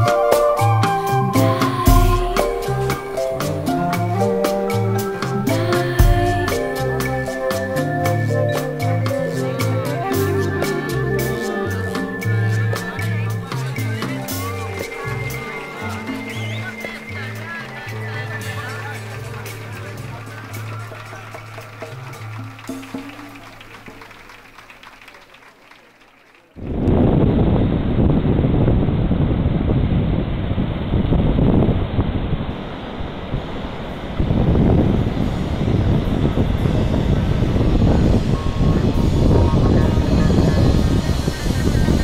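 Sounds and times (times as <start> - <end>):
music track: 0.0 - 24.9, 33.7 - 42.0
surf on beach: 26.6 - 42.0
wind on microphone: 26.6 - 42.0.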